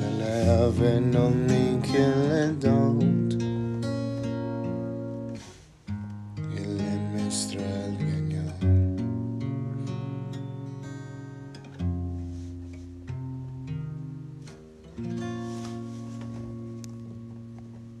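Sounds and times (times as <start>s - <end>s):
acoustic guitar chords: 0.0s - 18.0s.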